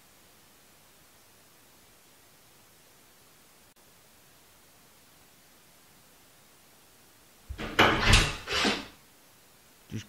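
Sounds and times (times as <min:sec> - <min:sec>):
door handle and latch: 0:07.5 - 0:08.7
door swinging open: 0:07.5 - 0:08.9.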